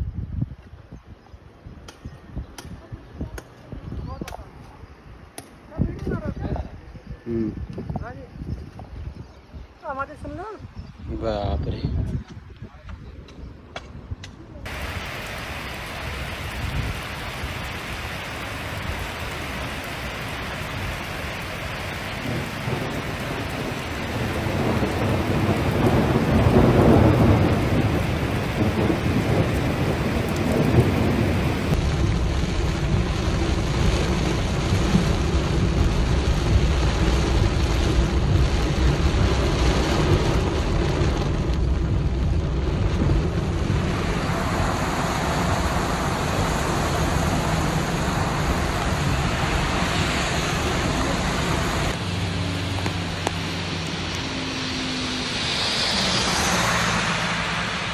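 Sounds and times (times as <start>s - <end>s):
low road rumble: 0.0s - 57.9s
deep rumble: 14.6s - 57.9s
heavy rain rushing: 14.6s - 57.9s
rain beating on a car: 14.6s - 57.9s.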